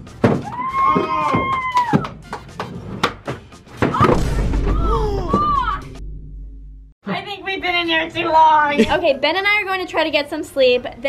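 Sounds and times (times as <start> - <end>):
background music: 0.0 - 6.9.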